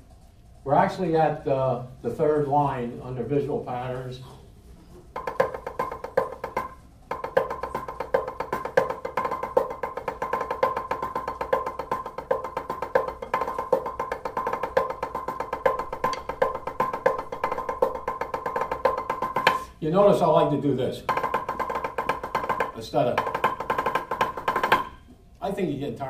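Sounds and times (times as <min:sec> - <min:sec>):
drumsticks on practice pad: 0:05.1 - 0:19.8, 0:21.1 - 0:25.2.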